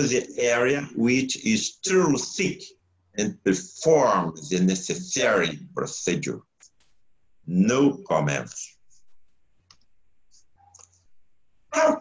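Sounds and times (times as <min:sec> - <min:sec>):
room hum: 0:00.0 - 0:12.0.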